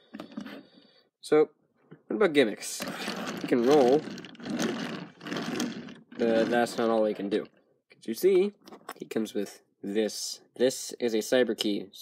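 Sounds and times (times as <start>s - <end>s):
toy car wheels rolling on plastic: 2.6s - 7.5s.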